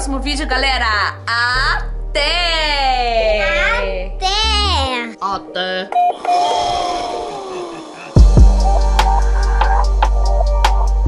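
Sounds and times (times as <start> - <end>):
held electronic tone: 5.9 - 9.7.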